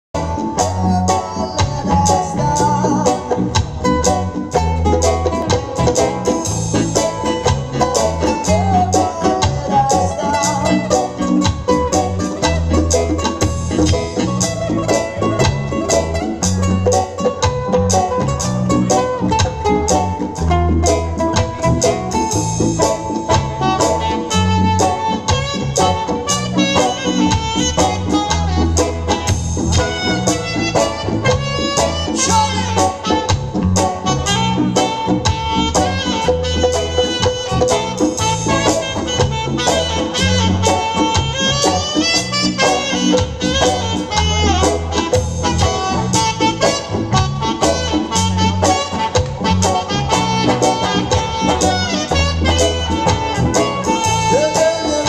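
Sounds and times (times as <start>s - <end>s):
deep bass line: 0.2s - 55.0s
djembe drumming: 0.2s - 55.0s
melodic lead line: 0.2s - 55.0s
strummed acoustic guitar: 0.2s - 55.0s.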